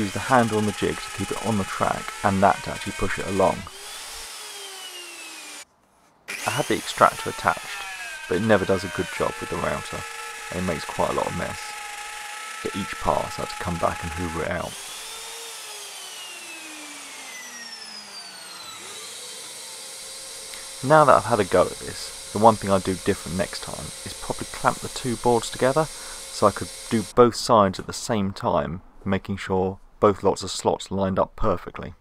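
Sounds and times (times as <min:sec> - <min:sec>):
router motor whine: 0:00.0 - 0:05.6, 0:06.3 - 0:27.1
vacuum extractor hissing: 0:00.0 - 0:05.6, 0:06.3 - 0:27.2.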